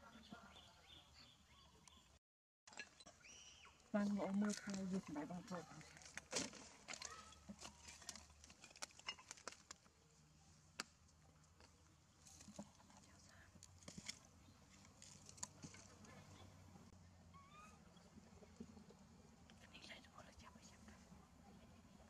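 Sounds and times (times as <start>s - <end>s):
faint low hum: 9.9s - 22.0s.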